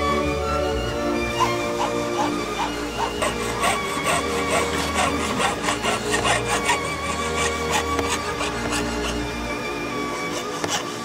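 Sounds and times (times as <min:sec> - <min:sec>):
piercing saw cutting metal: 0:01.4 - 0:11.0.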